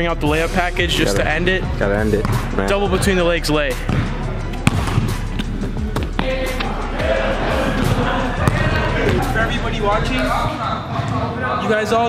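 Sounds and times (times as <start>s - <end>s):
background music: 0.0s - 12.0s
basketball bouncing on gym floor: 3.9s - 5.2s, 8.4s - 9.2s.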